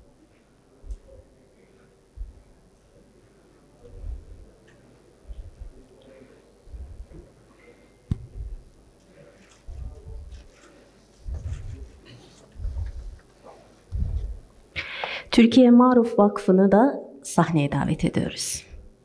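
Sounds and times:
faint murmuring voices: 0.0 - 14.9
low dull thumps: 3.9 - 4.5, 5.3 - 5.8, 6.7 - 7.2, 8.1 - 8.8
sharp knock: 8.1 - 8.6.

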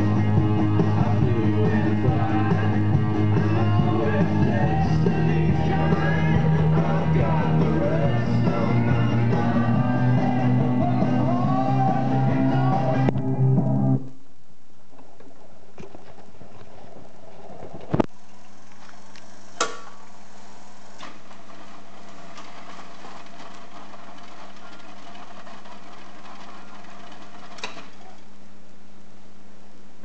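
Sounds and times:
jukebox motor hum: 0.0 - 13.9, 17.6 - 28.4
mechanical clunks: 19.6 - 20.0.

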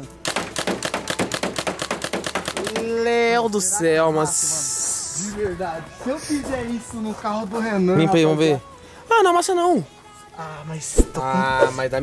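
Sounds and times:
paintball marker rapid firing: 0.2 - 3.0.

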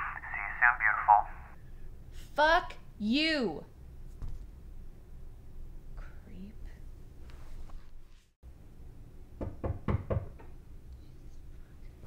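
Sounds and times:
knocks on a door: 9.4 - 10.6.

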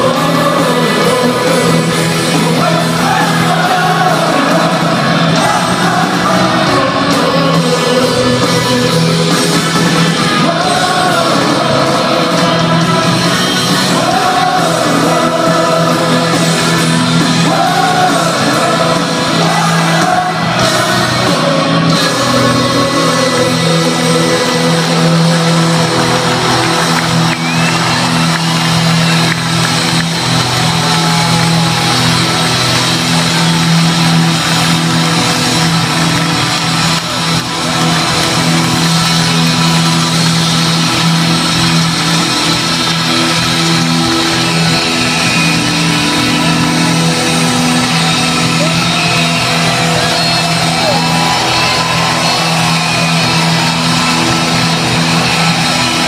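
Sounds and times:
crowd noise: 0.0 - 56.0
rock band holding low chord: 0.0 - 56.0.

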